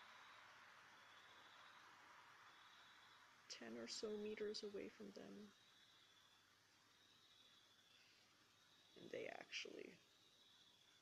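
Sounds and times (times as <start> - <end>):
faint background hiss: 0.0 - 11.0
faint steady high tone: 0.0 - 11.0.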